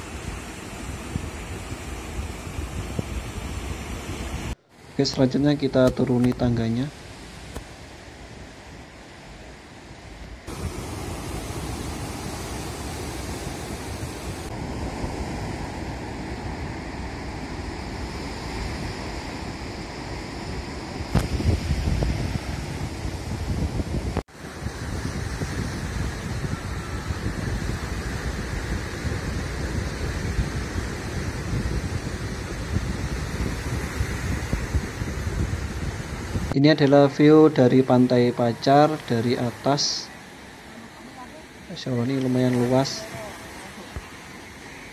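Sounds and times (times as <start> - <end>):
ocean surf breaking on beach: 0.0 - 44.9
wind rumbling on microphone: 0.0 - 44.9.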